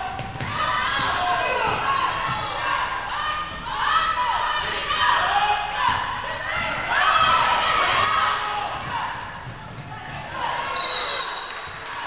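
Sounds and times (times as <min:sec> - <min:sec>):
voices calling and shouting: 0:00.0 - 0:12.0.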